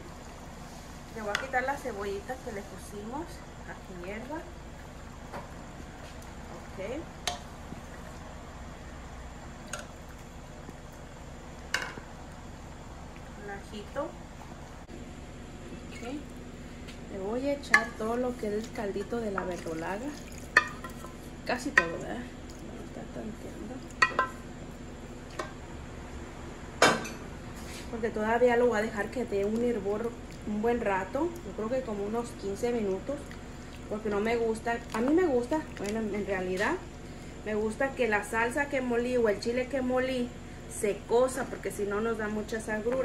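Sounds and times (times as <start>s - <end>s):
wooden spoon in metal pot: 17.6s - 22.2s, 23.8s - 24.4s
metal pot clinking: 24.0s - 24.4s.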